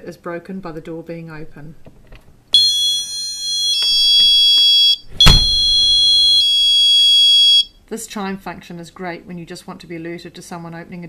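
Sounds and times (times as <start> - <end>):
two-note electronic door chime: 3.6 - 6.5
loud knock: 5.2 - 6.0.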